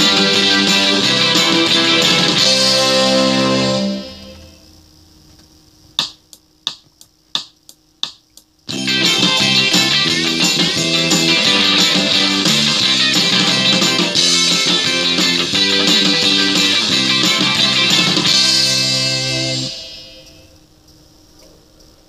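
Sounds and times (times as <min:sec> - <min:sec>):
arpeggio exercise music: 0:00.0 - 0:04.5, 0:08.7 - 0:20.2.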